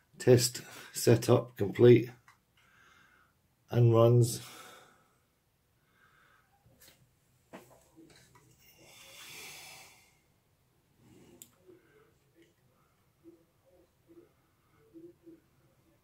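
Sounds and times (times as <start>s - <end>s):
soft breath: 2.6s - 3.4s, 4.4s - 7.0s, 8.0s - 10.4s, 11.0s - 13.4s.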